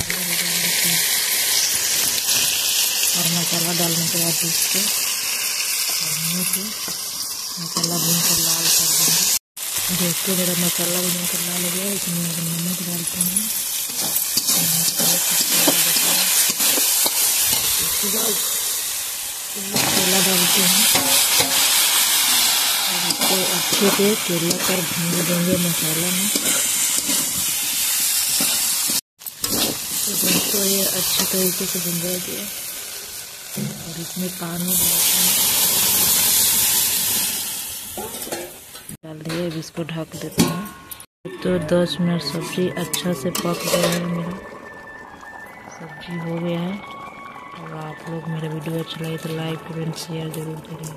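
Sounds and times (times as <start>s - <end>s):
spice paste sizzling in hot oil: 0.0s - 38.7s
metal spatula scraping: 20.8s - 21.8s, 29.4s - 31.4s, 42.3s - 44.3s
spatula scraping: 43.3s - 44.0s.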